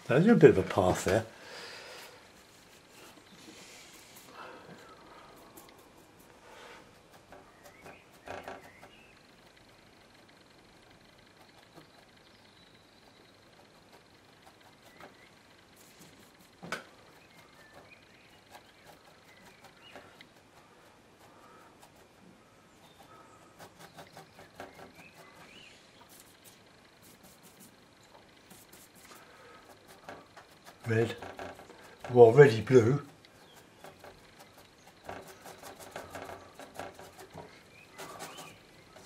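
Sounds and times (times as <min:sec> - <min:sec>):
bristle brush scratching board: 0:02.2 - 0:04.3, 0:15.8 - 0:39.0.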